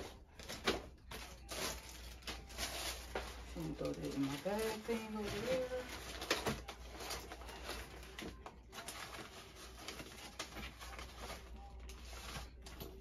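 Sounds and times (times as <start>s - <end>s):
papers and plastic rustling: 0.0s - 13.0s.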